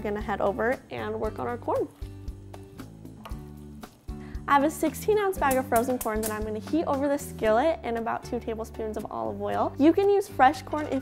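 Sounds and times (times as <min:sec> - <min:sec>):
background music with soft beat: 0:00.0 - 0:11.0.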